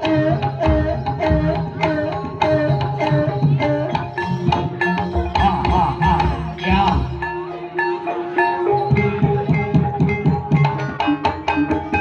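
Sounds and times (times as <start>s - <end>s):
hand drums: 0.0s - 12.0s
mallet-struck keyed instruments: 0.0s - 12.0s
held tone: 0.6s - 10.8s.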